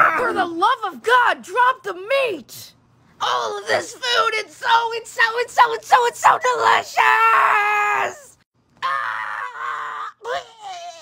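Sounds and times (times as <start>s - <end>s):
man wailing and crying out: 7.2s - 11.0s.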